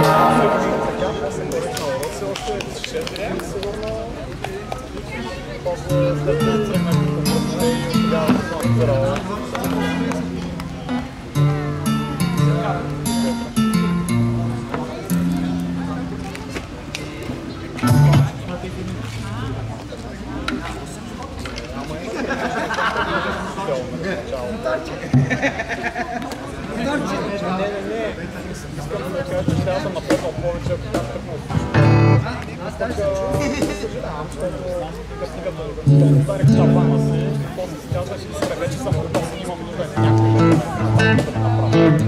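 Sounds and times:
people talking indistinctly: 0.0 - 42.0.

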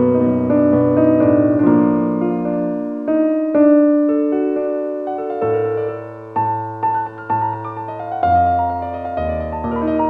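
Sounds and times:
slow calm piano music: 0.0 - 10.0.

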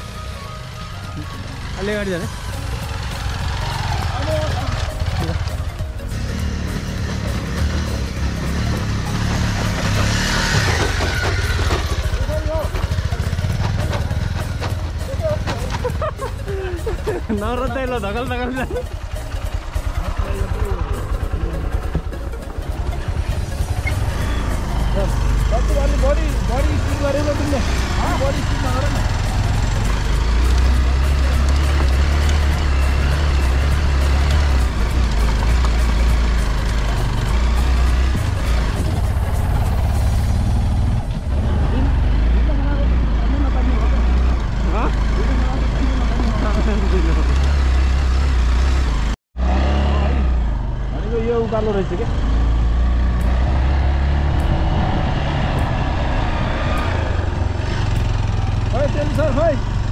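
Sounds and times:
motorcycle engine rumbling: 0.0 - 59.9.

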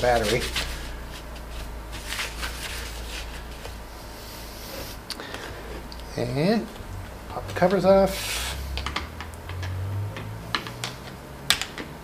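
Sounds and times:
cloth wiping plastic: 0.0 - 5.0.

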